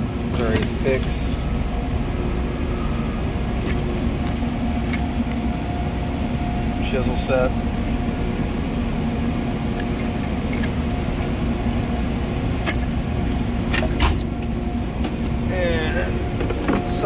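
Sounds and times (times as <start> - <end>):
machinery hum: 0.0 - 17.0
faint steady tone: 0.1 - 17.0.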